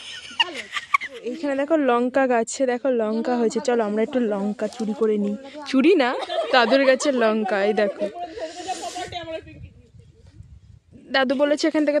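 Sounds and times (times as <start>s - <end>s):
person's voice: 0.4s - 9.8s
breathy hiss: 8.3s - 9.1s.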